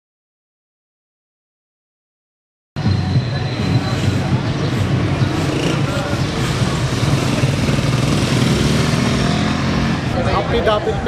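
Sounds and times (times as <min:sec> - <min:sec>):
motorcycle and tricycle engines: 0:02.8 - 0:11.0
people's voices: 0:02.8 - 0:11.0.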